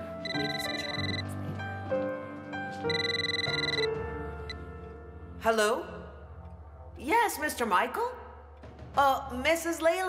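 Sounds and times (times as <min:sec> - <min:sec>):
soft background music: 0:00.0 - 0:10.0
telephone ringing: 0:00.2 - 0:01.3, 0:02.9 - 0:04.6.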